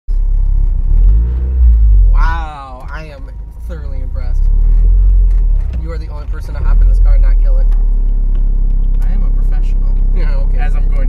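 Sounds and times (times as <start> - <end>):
car engine rumble: 0.1 - 11.0.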